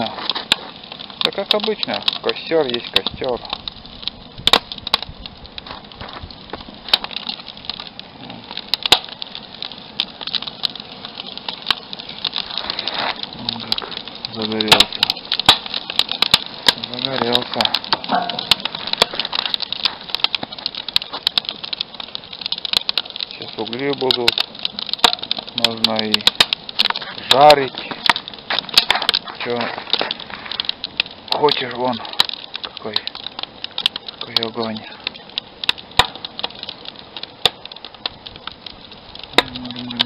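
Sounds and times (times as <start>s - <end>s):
wood fire crackling and popping: 0.0s - 40.0s.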